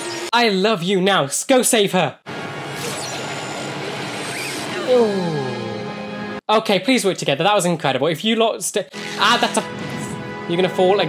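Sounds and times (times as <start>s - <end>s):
man saying ooh: 4.8s - 5.9s.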